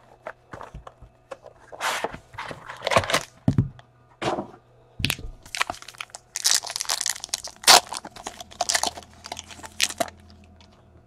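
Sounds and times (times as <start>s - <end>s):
wrapper tearing and crinkling: 5.0s - 10.3s
cards handled against wrapper: 5.0s - 10.7s.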